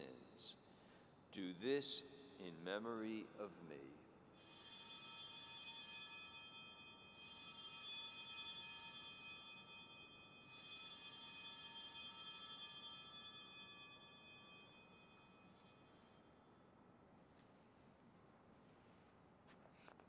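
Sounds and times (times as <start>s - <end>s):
altar bells ringing: 4.3s - 16.7s.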